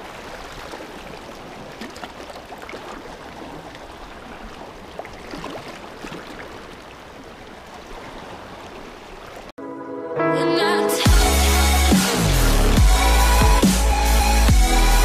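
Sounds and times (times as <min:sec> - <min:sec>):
sea water lapping on rocks: 0:00.0 - 0:09.5
small water splashes: 0:00.0 - 0:09.5.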